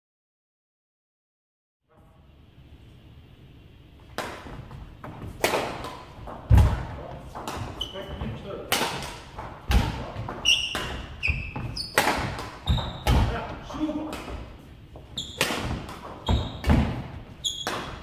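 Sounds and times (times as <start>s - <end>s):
racket hitting shuttlecock: 4.1s - 18.0s
shoe squeaks: 7.8s - 8.2s, 10.4s - 13.2s, 15.1s - 15.5s, 16.2s - 16.8s, 17.4s - 18.0s.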